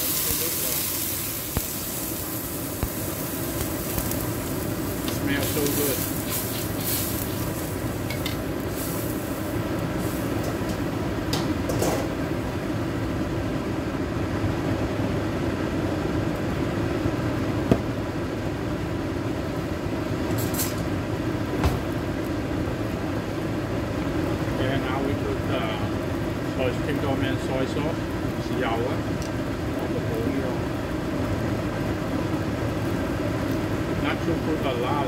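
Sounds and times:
gas burner rumble and hiss: 0.0 - 35.0.

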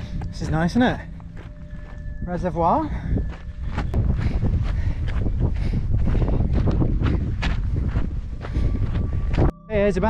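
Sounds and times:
footsteps scuffing on dirt: 0.0 - 9.6
low rumble: 0.0 - 10.0
wind buffeting microphone: 0.0 - 10.0.

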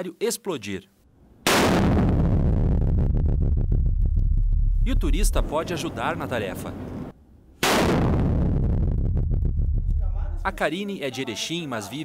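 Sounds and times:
deep explosion rumble: 1.5 - 5.6, 7.7 - 10.6.

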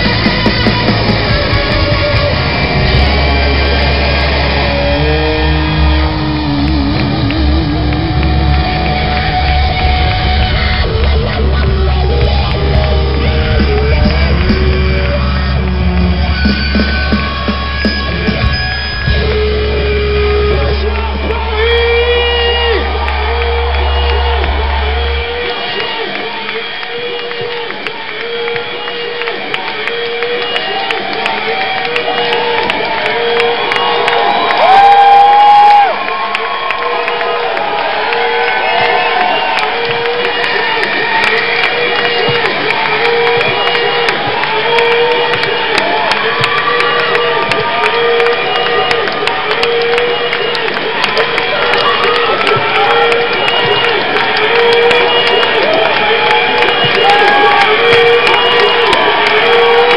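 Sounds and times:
audience cheering and shouting: 0.0 - 59.9.

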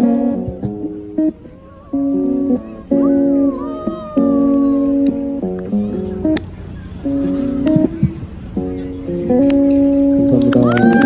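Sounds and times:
acoustic guitar chords: 0.0 - 10.4.

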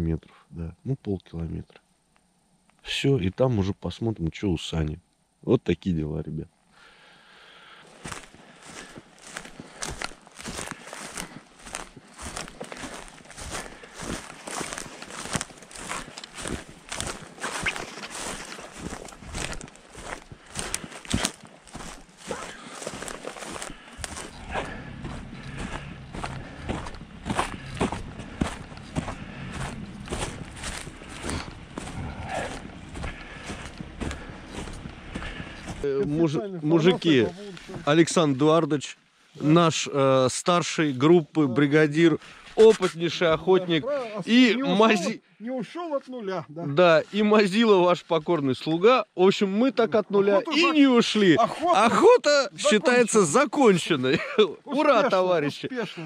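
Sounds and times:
footsteps through dry grass: 7.6 - 38.0
low steady rumble: 21.6 - 36.2.

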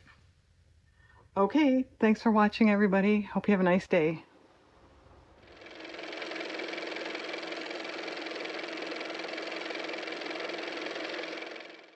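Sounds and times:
old car engine running: 5.4 - 11.9.

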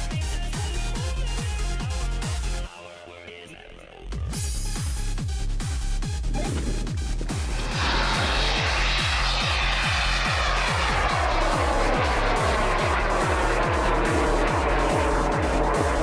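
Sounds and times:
electronic dance music: 0.0 - 16.0
rocket motor roaring: 6.2 - 16.0.

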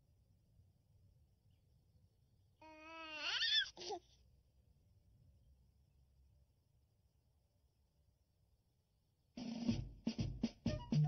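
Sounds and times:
baby vocalizing rising in pitch: 2.6 - 4.0.

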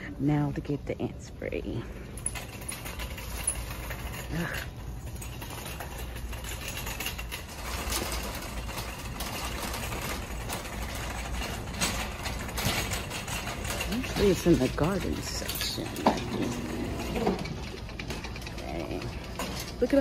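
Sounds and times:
shopping cart wheels rumbling: 1.9 - 20.0
cart basket rattling: 2.2 - 20.0.

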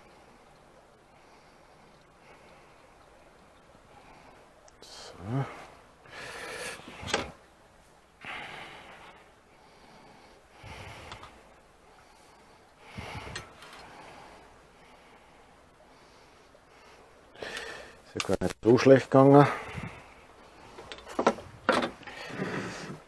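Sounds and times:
person breathing: 3.9 - 7.1, 8.2 - 18.0, 19.4 - 21.0, 22.0 - 23.0.

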